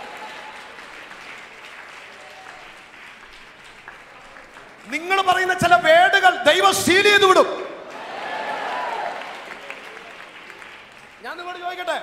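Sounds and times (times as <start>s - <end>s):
congregation applauding: 0.0s - 12.0s.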